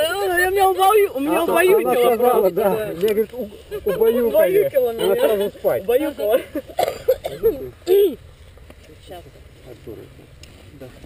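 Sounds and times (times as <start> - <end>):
people talking: 0.0 - 8.2.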